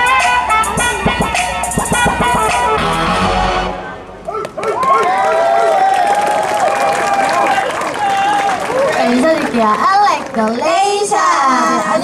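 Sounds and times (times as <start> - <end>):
dance-pop music over speakers: 0.0 - 3.2
audience cheering and screaming: 4.2 - 9.1.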